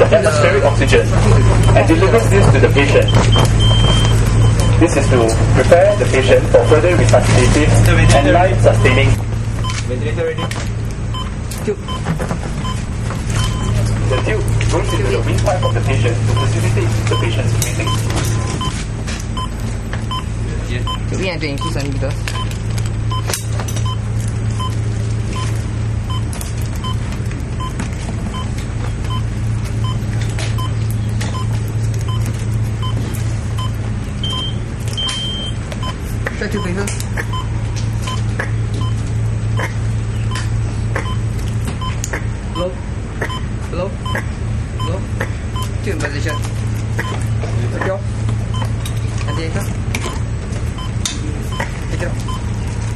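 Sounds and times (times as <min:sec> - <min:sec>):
steady low hum: 0:00.0 - 0:52.9
medical equipment beeps: 0:00.2 - 0:39.0, 0:39.6 - 0:52.6.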